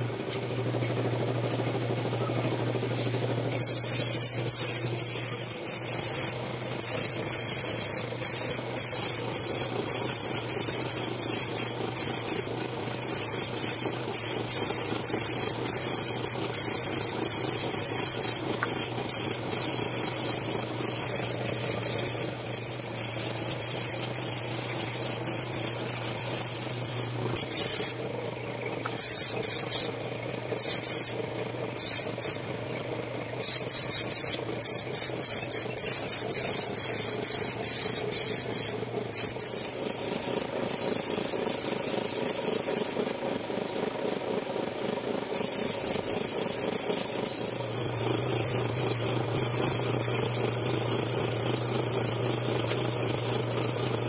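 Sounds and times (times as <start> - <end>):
spray gun hissing: 0.0 - 28.1, 28.8 - 32.5, 33.4 - 43.0, 45.3 - 54.0
steady low hum: 0.0 - 42.8.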